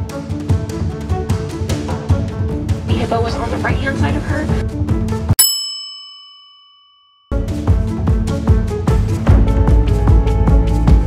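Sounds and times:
bell-like ding: 5.4 - 7.4.

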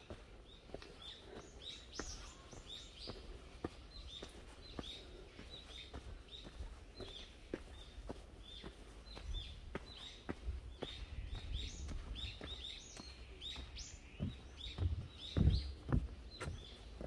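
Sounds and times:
footsteps on dirt path: 0.0 - 17.0
small birds chirping: 0.0 - 17.0
heavy low thumps: 14.1 - 16.7.

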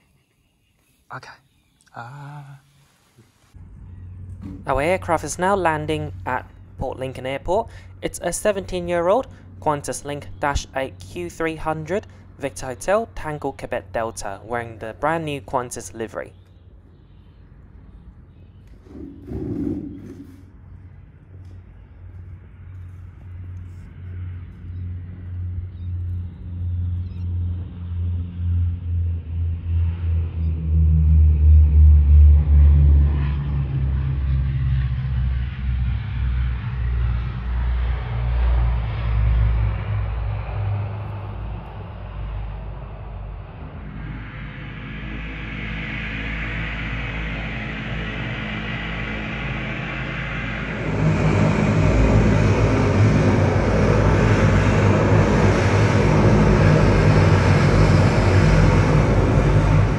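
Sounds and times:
turboprop engines rumbling: 3.5 - 59.9
propeller whine and hiss: 18.6 - 30.3, 31.1 - 59.9.

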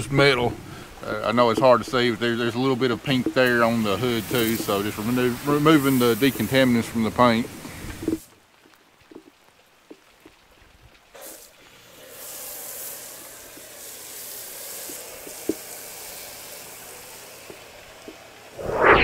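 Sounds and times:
foam cannon spraying hiss: 2.7 - 7.0, 11.2 - 19.0.

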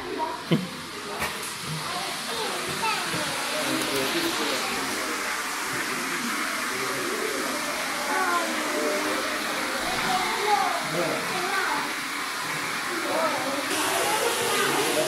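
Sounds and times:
indistinct voices: 0.0 - 15.0
steady hiss: 12.5 - 15.0.

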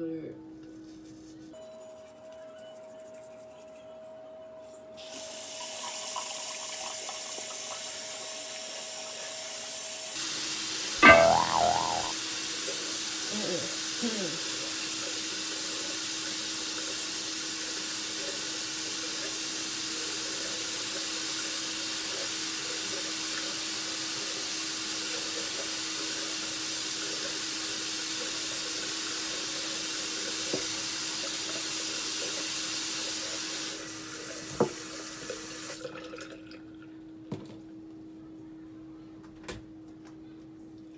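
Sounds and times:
faucet running: 5.0 - 9.7
brief loud pitched sound: 11.0 - 12.1.

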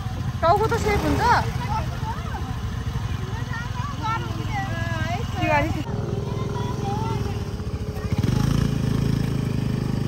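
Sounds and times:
scooter engine revving: 0.0 - 10.0.

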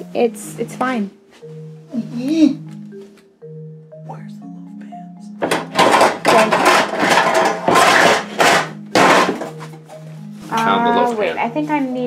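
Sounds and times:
metal pans clanking and rattling: 5.4 - 9.8.

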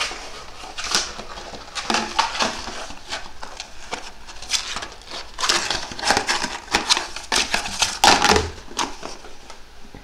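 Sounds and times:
cardboard tube scraping on tile floor: 0.0 - 9.6.

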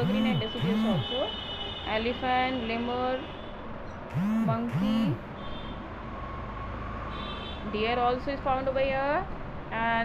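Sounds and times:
spoken word: 4.5 - 5.2.

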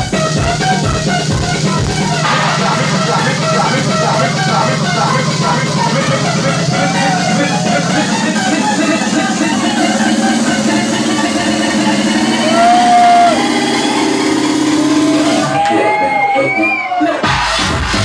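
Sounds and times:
kick-drum beat: 0.0 - 15.4, 17.2 - 18.0
synth melody: 0.0 - 15.6
held bass note: 1.4 - 15.5.

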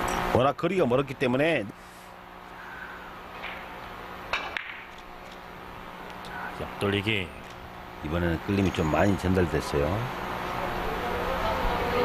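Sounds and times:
cue striking billiard ball: 4.3 - 4.9
billiard balls clacking: 4.3 - 5.0.

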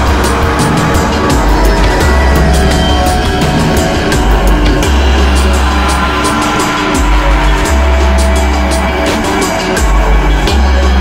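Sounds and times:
heavy sub-bass notes: 0.0 - 11.0
sustained synth tones: 0.0 - 11.0.

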